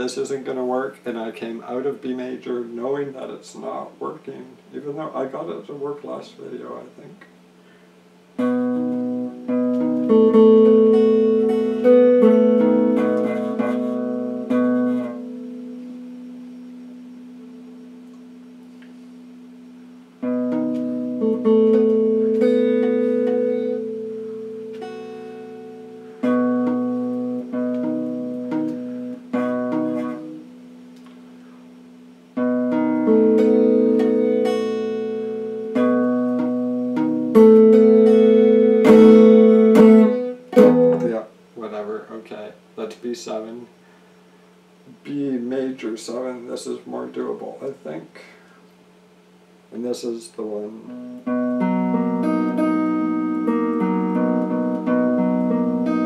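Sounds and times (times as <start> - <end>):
clean electric guitar chords: 8.3 - 41.5, 50.7 - 56.0
muted scratchy guitar strokes: 8.6 - 16.2.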